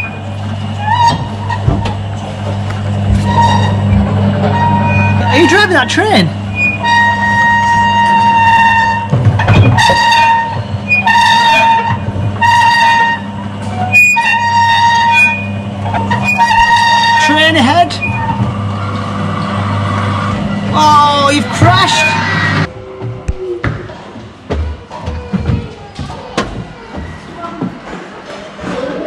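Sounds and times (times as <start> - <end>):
low running hum: 0.0 - 28.1
train whistle toots: 6.8 - 9.1, 9.8 - 13.3
child's voice: 24.8 - 27.8.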